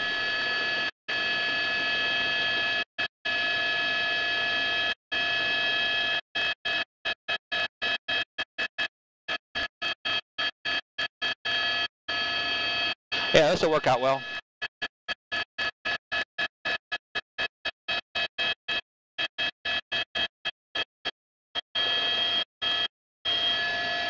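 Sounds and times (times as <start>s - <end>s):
helicopter cabin whine over intercom: 13.2s - 14.4s.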